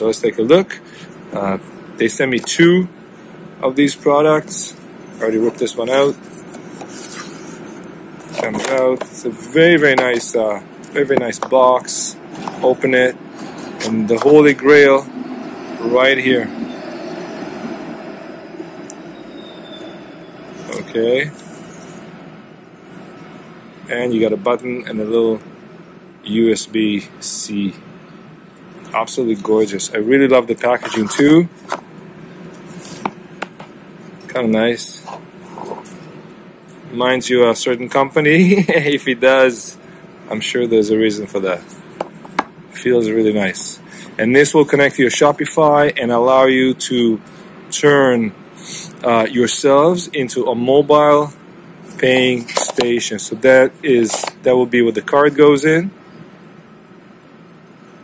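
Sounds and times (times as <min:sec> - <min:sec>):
faint background hum: 0:00.0 - 0:58.0
faint high whine: 0:00.0 - 0:58.0
street background noise: 0:00.0 - 0:58.0.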